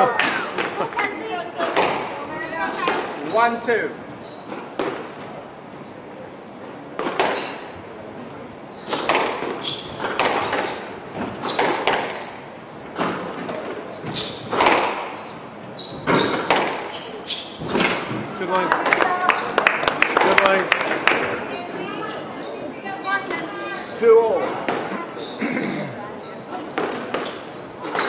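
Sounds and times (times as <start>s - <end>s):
squash ball striking rackets and walls: 0.0s - 3.4s, 4.4s - 5.3s, 6.9s - 7.8s, 8.8s - 18.6s, 24.6s - 25.0s, 26.4s - 28.0s
shoes squeaking on wooden floor: 0.0s - 3.5s, 4.1s - 5.4s, 6.3s - 7.9s, 8.6s - 18.6s, 21.7s - 28.0s.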